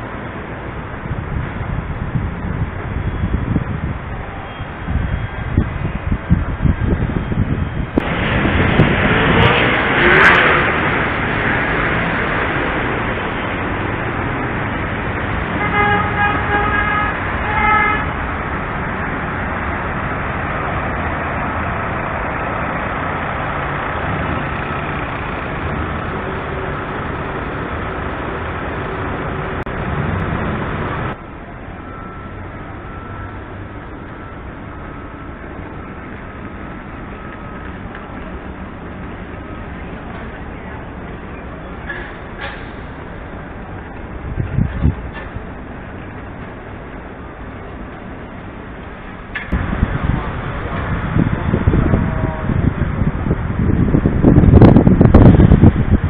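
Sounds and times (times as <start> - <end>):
street traffic noise: 0.0 - 56.0
car horn honking: 15.5 - 18.2.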